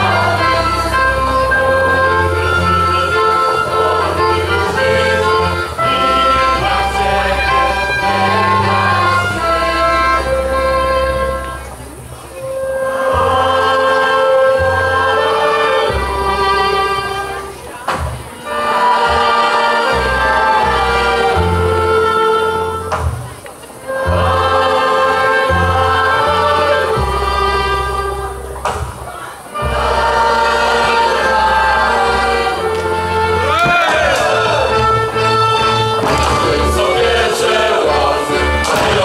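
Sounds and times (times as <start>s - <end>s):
choir singing held notes: 0.0s - 39.0s
folk dance music: 0.0s - 39.0s
bass line: 29.6s - 39.0s.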